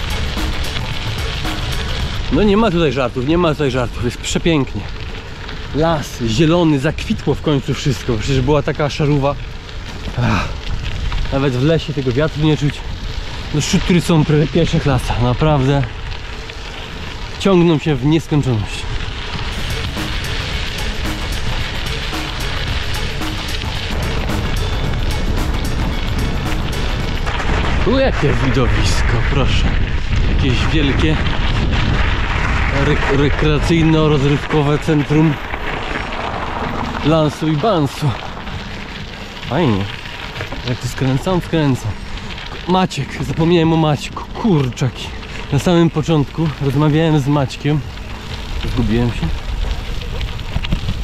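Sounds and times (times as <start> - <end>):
background music: 0.0 - 2.8, 19.4 - 27.8
wind noise: 0.0 - 8.8, 9.4 - 51.0
bicycle tyres crunching on gravel: 0.0 - 51.0
wind on microphone: 19.0 - 37.0, 48.1 - 51.0.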